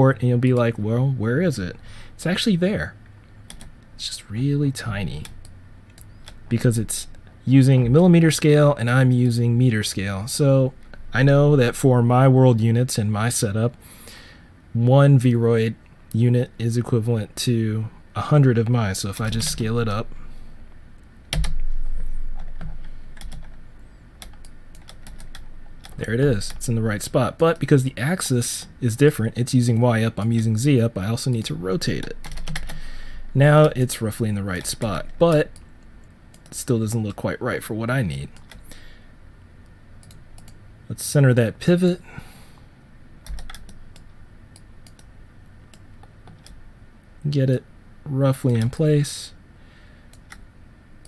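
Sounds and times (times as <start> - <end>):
keyboard keys clicking: 21.3 - 23.6, 24.2 - 26.6, 32.0 - 32.8, 43.2 - 44.0
keyboard keystroke clicks: 43.2 - 44.1.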